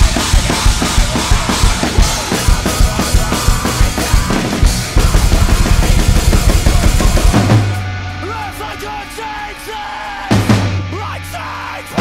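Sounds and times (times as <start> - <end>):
fast kick drum strokes: 0.0 - 7.8
acoustic drum kit playing: 0.0 - 12.0
recorded metalcore music: 0.0 - 12.0.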